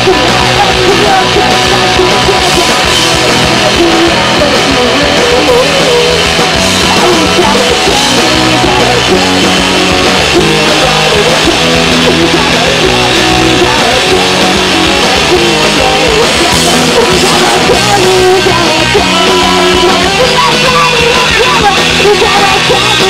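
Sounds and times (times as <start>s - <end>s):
bass guitar: 0.0s - 23.0s
drum kit: 0.0s - 23.0s
electric guitars: 0.0s - 23.0s.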